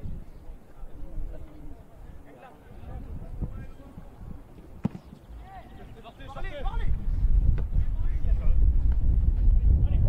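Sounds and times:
football kick thud: 4.8 - 5.2, 7.4 - 7.8.

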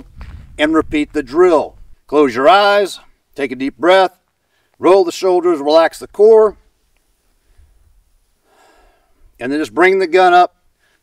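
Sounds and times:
man breathing: 4.4 - 4.8, 7.1 - 9.4, 10.6 - 11.0.

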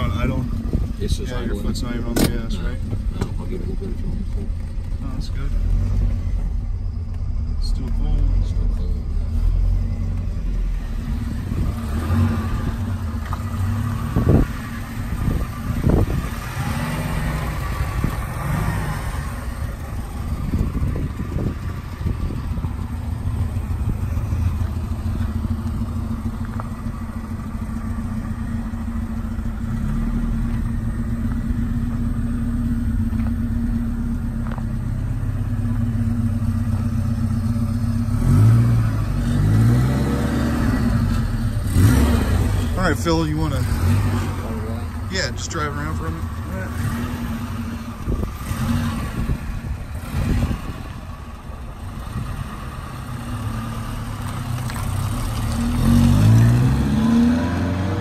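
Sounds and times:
car engine idling: 0.0 - 56.6.

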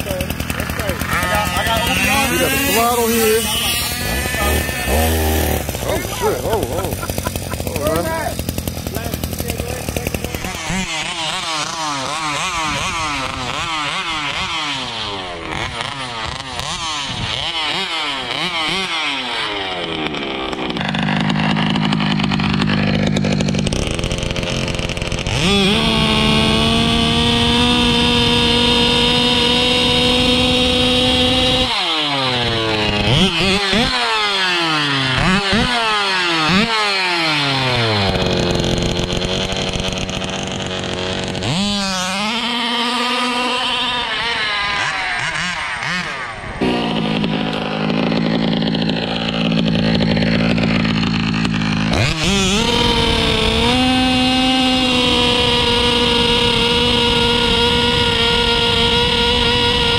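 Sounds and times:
two-stroke engine revving: 0.0 - 59.9.

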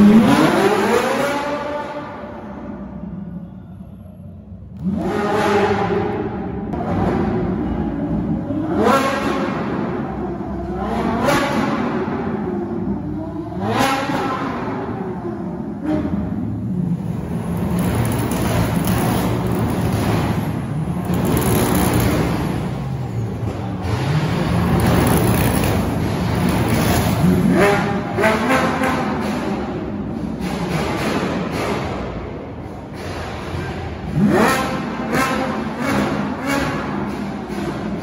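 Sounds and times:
sports car engines revving: 0.0 - 3.5, 4.4 - 38.0
car engine running low: 4.6 - 31.8.

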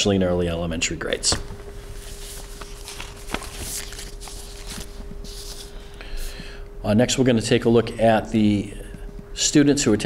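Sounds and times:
electrical hum: 0.0 - 10.0
papers rustling: 1.3 - 5.8.

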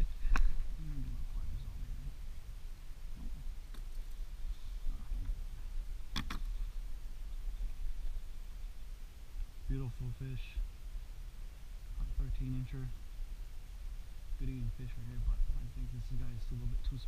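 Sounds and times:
low microphone rumble: 0.0 - 17.0.

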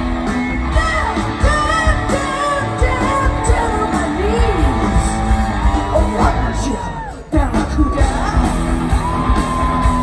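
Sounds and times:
live rock band playing: 0.0 - 10.0
woman singing lead vocal: 0.5 - 8.8.

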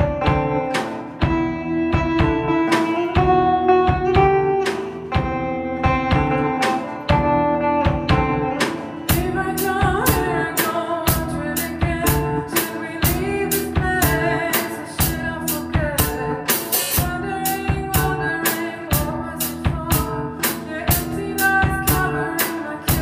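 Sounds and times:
drum kit steady beat: 0.0 - 23.0
electric guitar bending notes: 0.0 - 23.0.

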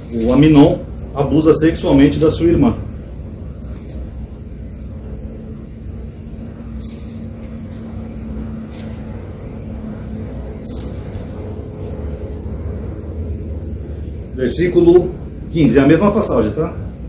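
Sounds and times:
faint hum: 0.0 - 17.0
low background rumble: 0.0 - 17.0.

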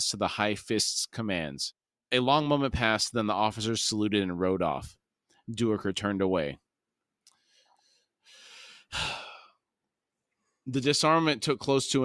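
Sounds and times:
person inhaling softly: 7.3 - 9.6
person exhaling with a sigh: 8.4 - 9.6.

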